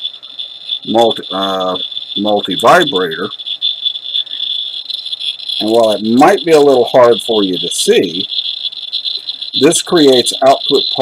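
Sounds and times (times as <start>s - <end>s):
geiger counter chirping: 0.0s - 11.0s
person speaking: 0.9s - 3.3s, 5.6s - 8.3s, 9.6s - 11.0s.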